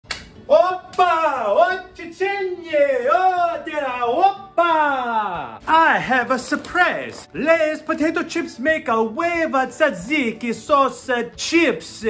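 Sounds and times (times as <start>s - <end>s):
finger snap: 0.0s - 1.0s.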